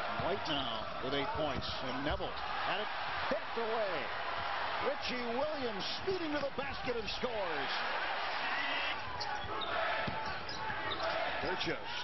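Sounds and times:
arena crowd noise: 0.0 - 12.0
basketball bouncing on court: 9.0 - 11.1.

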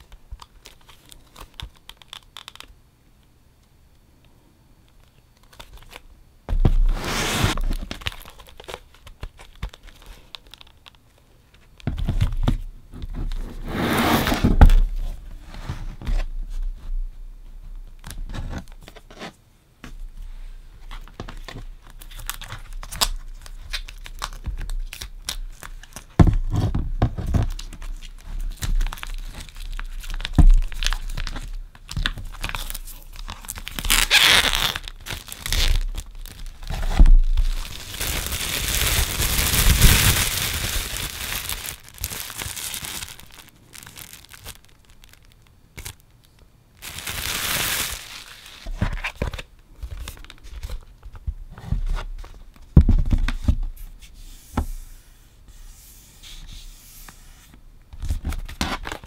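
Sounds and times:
plastic shrink wrap crackling: 0.0 - 2.7, 7.5 - 11.0, 27.3 - 50.8.

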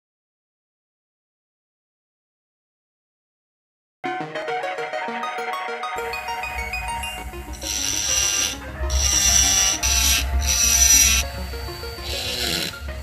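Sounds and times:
rotary tool grinding metal: 7.5 - 13.0.

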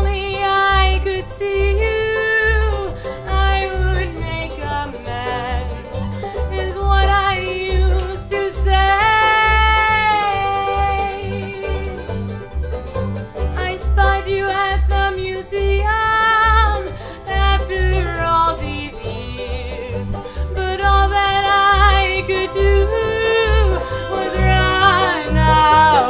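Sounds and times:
woman singing: 0.0 - 12.0, 13.6 - 26.0
bluegrass string band: 0.0 - 26.0.

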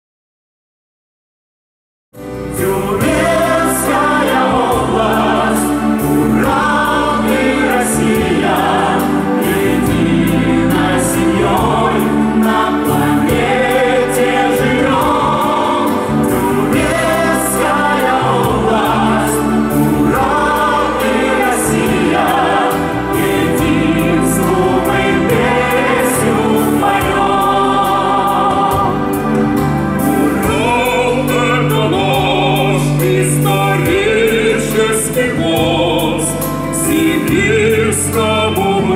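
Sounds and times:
instrumental accompaniment with beat: 2.2 - 38.9
person singing: 2.5 - 38.9.

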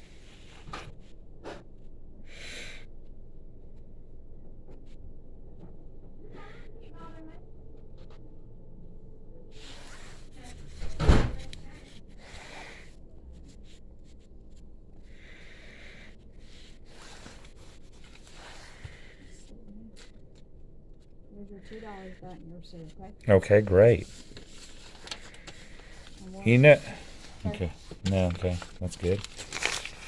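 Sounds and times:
soft noisy stretches: 9.5 - 30.0.

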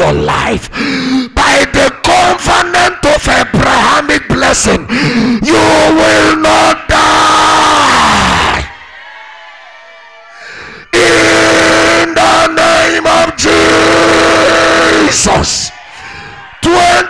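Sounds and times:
man shouting long notes: 10.9 - 15.5.

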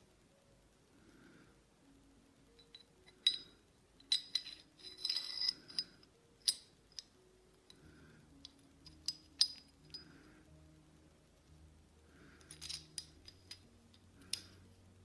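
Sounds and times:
steel gun parts clinking: 2.6 - 7.1, 8.5 - 10.1, 12.4 - 14.5.

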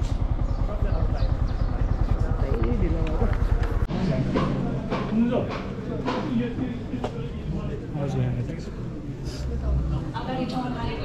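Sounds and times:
motorcycle engine running: 0.0 - 5.7
voices talking: 0.0 - 11.0.

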